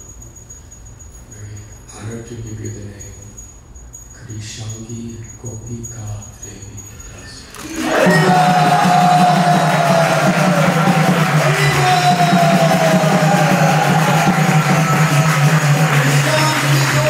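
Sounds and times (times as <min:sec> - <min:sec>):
jingling percussion: 0:00.0 - 0:17.0
voices singing: 0:07.6 - 0:17.0.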